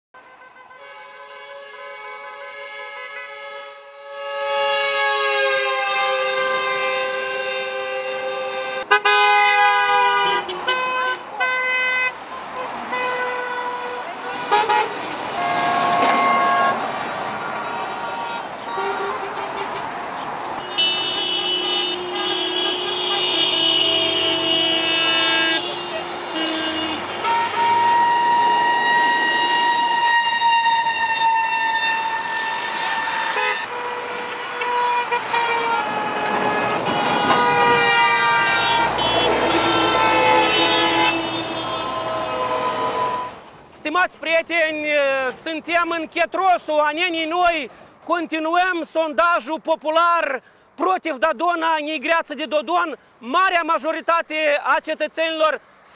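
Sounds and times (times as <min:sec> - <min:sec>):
truck air horn blasts: 0:00.2 - 0:16.8, 0:17.4 - 0:19.9, 0:20.6 - 0:43.4
vehicle horns honking: 0:00.2 - 0:19.9, 0:20.6 - 0:43.5.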